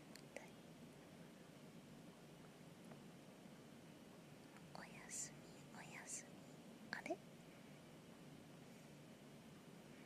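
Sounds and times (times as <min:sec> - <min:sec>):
person whispering: 0:00.2 - 0:00.6, 0:04.7 - 0:06.3, 0:06.9 - 0:07.2.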